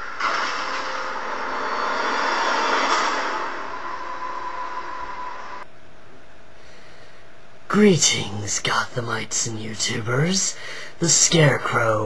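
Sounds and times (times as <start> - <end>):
steady rushing noise: 0.0 - 5.7.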